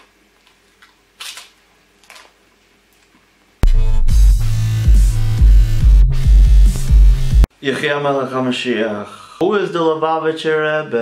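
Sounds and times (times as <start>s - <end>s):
crisp cracker crunching: 0.0s - 2.4s.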